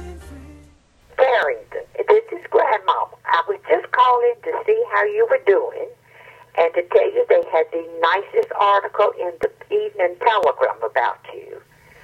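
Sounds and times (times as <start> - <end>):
faint low hum: 0.8 - 12.0
person talking on answering machine: 1.2 - 11.7.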